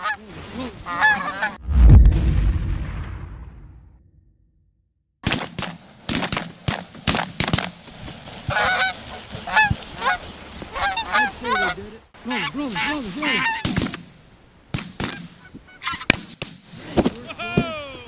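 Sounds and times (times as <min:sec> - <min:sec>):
geese honking: 0:00.8 - 0:01.6, 0:08.5 - 0:13.7, 0:15.1 - 0:16.1.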